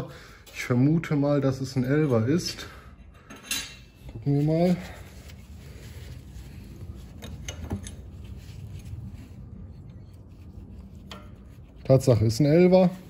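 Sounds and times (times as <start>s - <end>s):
metal wrenches clinking: 7.2s - 8.2s.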